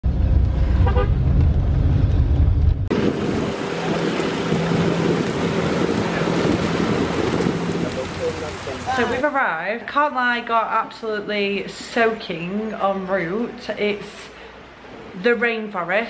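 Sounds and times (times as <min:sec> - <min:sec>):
boat engine drone: 0:00.1 - 0:09.2
car horn beep: 0:00.8 - 0:01.2
water and wind rushing: 0:02.9 - 0:09.4.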